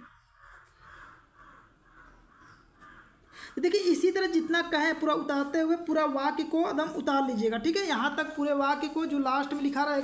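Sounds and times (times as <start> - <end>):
faint bird calls: 0.0 - 3.6.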